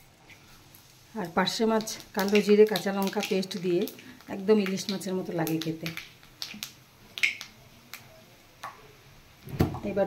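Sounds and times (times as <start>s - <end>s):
seeds popping in hot oil: 0.2s - 8.9s.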